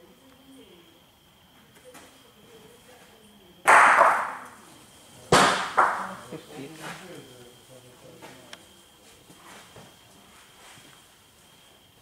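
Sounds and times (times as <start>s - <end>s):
bocce balls knocking: 5.3s - 6.2s.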